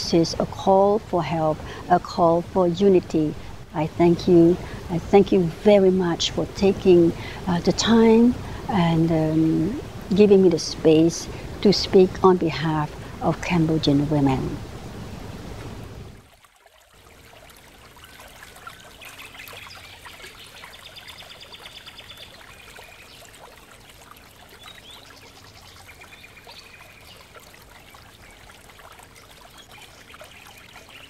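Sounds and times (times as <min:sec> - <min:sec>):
outdoor background hiss: 0:00.0 - 0:31.0
trickle of running water: 0:00.0 - 0:31.0.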